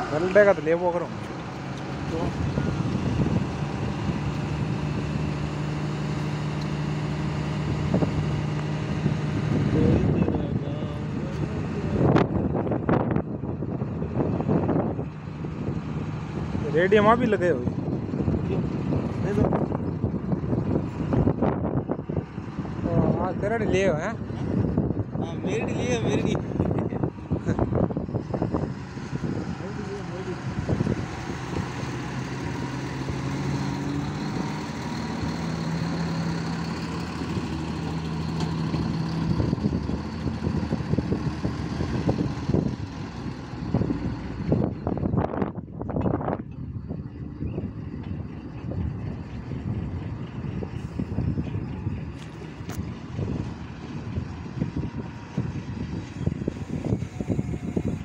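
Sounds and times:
tractor diesel engine running: 0.0 - 58.0.

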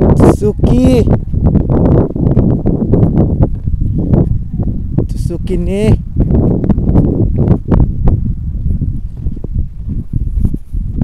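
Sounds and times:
wind rumbling on microphone: 0.0 - 11.0
footsteps on dirt path: 1.1 - 5.0, 6.0 - 11.0.

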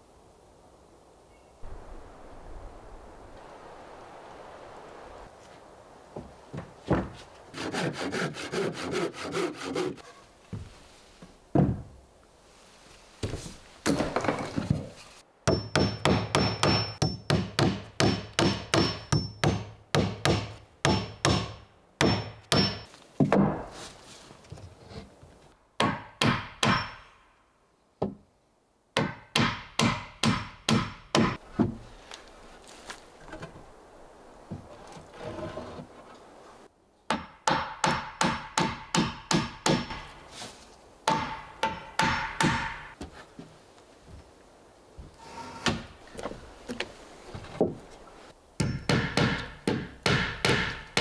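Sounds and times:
hammer striking nails into wood: 15.5 - 23.5, 25.8 - 27.0, 29.0 - 31.4, 37.1 - 40.1, 41.1 - 42.9, 48.6 - 51.0.

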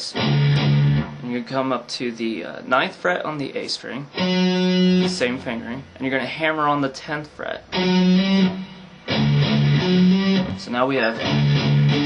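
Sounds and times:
distorted electric guitar riff: 0.0 - 1.4, 4.1 - 6.0, 7.6 - 12.0.

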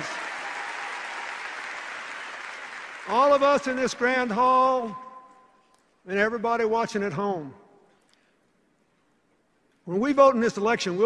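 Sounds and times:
large audience applauding: 0.0 - 4.2.

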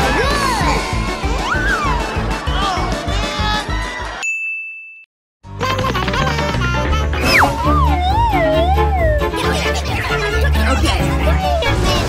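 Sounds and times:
music: 0.0 - 4.2, 5.4 - 12.0
high bell-like ding: 4.2 - 5.1.

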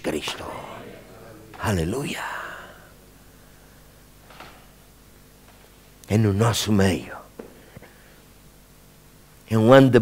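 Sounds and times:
man speaking in reverberant hall: 0.0 - 3.4, 6.1 - 7.4
low steady hum: 0.0 - 10.0.

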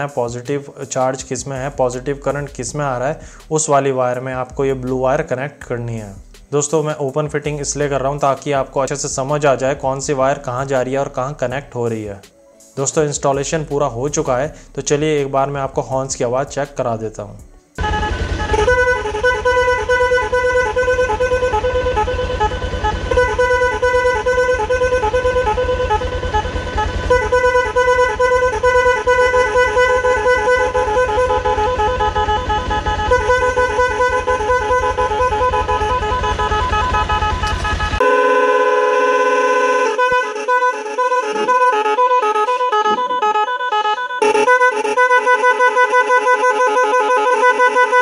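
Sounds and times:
pulsing multi-tone electric horn: 17.2 - 48.0.

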